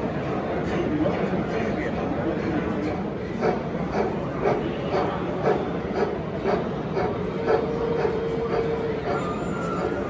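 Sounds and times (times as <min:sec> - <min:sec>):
model steam locomotive chuffing: 0:00.6 - 0:10.0.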